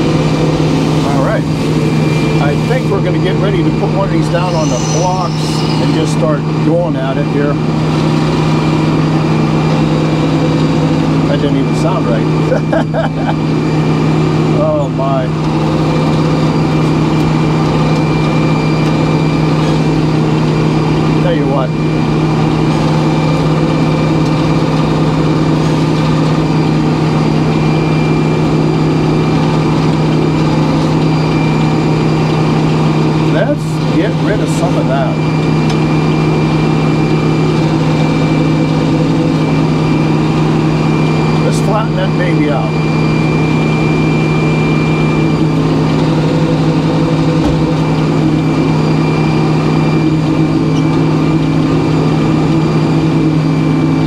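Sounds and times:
high whine: 0.0 - 54.0
sawmill engine running: 0.0 - 54.0
brief wavering sounds: 4.4 - 6.1.

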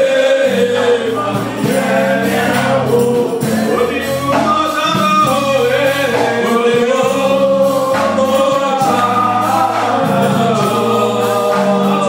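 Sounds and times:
congregation singing gospel song: 0.0 - 12.0.

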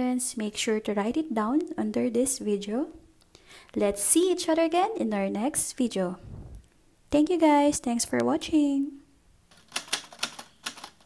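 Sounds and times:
typewriter keystrokes clacking: 9.5 - 11.0.

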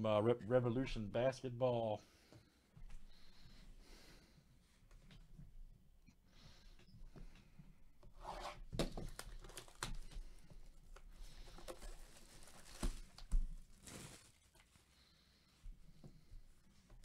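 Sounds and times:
plastic wrap crinkling and tearing: 8.8 - 15.2.

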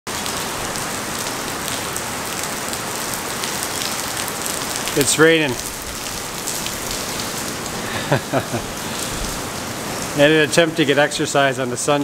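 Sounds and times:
heavy rain on puddles: 0.1 - 12.0.

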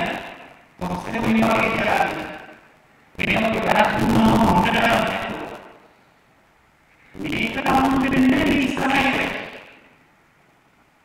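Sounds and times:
man speaking over public address: 0.0 - 2.6, 3.2 - 5.8, 7.2 - 9.8.

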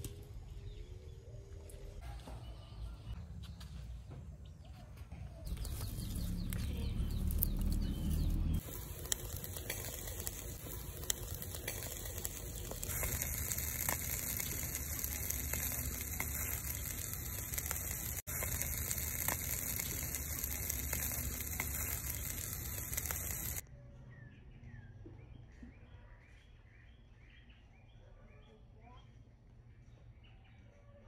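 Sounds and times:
crackles and pops: 5.5 - 23.6
fish sizzling on a grill: 5.5 - 23.6.

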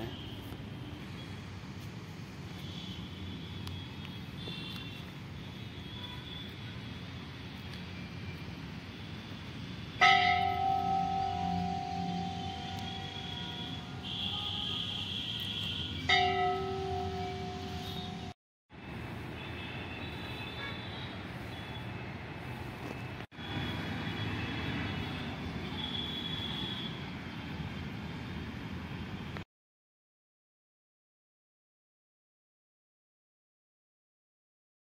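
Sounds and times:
large metal bell ringing: 10.0 - 14.1, 16.1 - 18.3.

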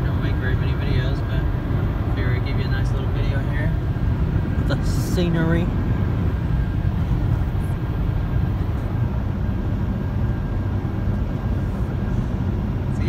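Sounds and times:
car cabin road and engine rumble: 0.0 - 13.0.

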